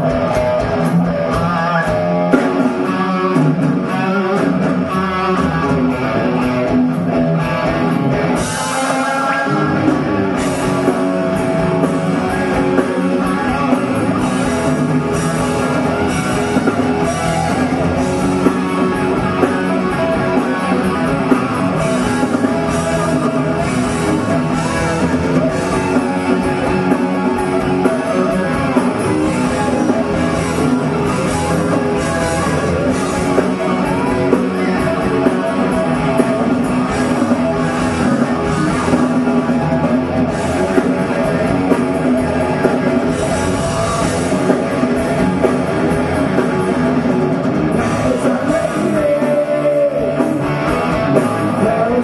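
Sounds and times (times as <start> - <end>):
bass guitar: 0.0 - 52.0
drum kit: 0.0 - 52.0
electric guitars: 0.0 - 52.0
live hard rock band: 0.0 - 52.0.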